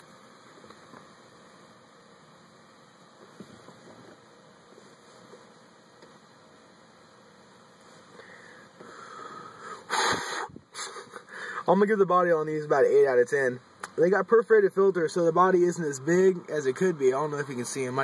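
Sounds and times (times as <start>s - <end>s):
man exhaling smoke: 8.0s - 11.6s.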